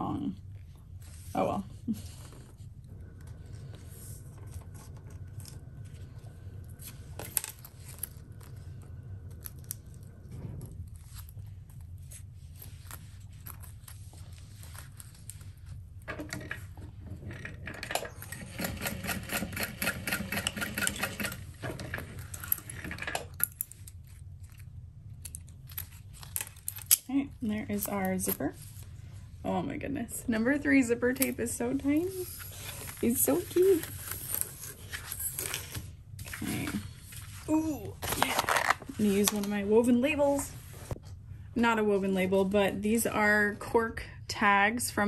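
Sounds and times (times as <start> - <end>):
low hum: 0.0 - 18.7
sewing machine stitching: 17.2 - 23.2.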